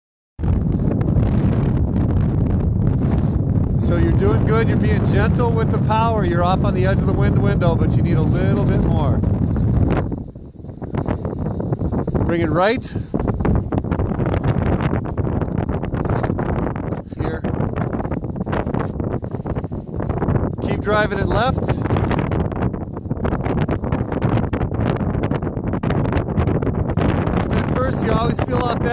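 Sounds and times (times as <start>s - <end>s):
wind buffeting microphone: 0.4s - 28.9s.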